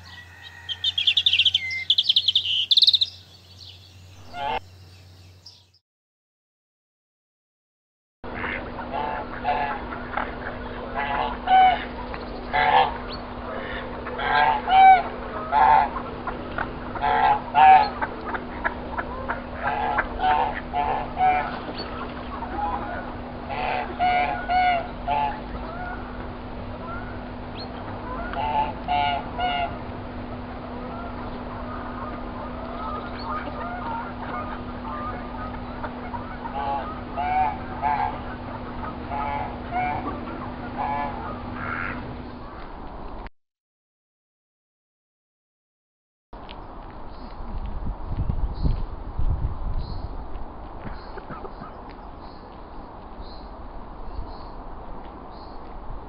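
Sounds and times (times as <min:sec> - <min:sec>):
goose honking: 0:04.2 - 0:04.7, 0:08.3 - 0:26.2, 0:26.8 - 0:29.9, 0:30.8 - 0:42.6
steady low hum: 0:08.2 - 0:43.3.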